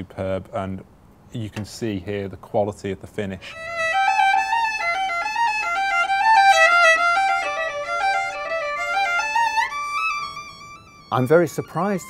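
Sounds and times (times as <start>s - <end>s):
violin melody: 3.4s - 12.0s.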